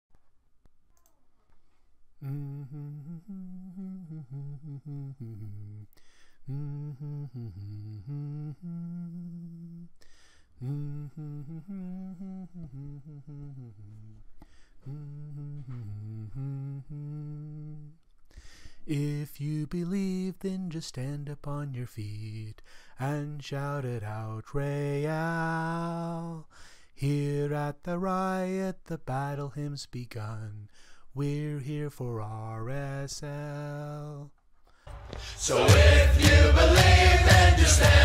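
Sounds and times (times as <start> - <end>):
man humming a slow melody: 2.2 - 10.0, 10.6 - 18.0.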